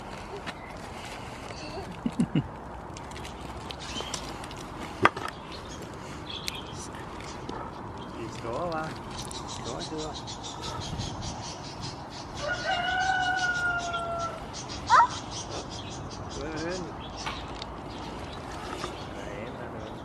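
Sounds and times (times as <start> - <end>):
rooster crowing: 12.4 - 14.6.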